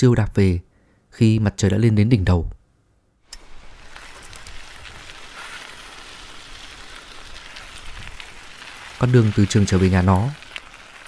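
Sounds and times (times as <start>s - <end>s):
hiss of fine crackles: 3.3s - 11.0s.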